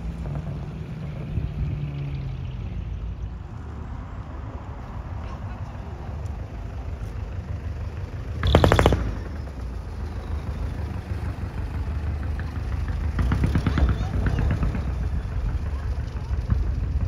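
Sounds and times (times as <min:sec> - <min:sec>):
van engine running low: 0:00.0 - 0:17.0
loud burst of rapid pops: 0:08.4 - 0:09.4.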